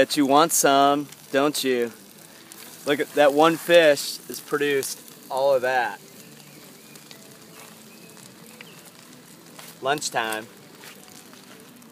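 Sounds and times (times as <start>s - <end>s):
fish sizzling in hot oil: 0.0s - 11.9s.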